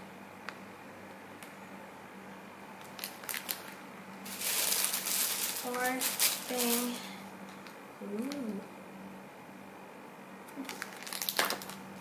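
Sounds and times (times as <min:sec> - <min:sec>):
plastic bag crinkling: 0:02.8 - 0:07.2, 0:10.6 - 0:11.8.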